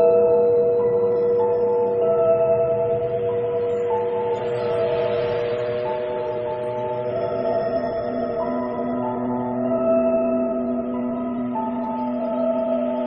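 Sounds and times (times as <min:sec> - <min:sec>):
singing bowls ringing: 0:00.0 - 0:13.0.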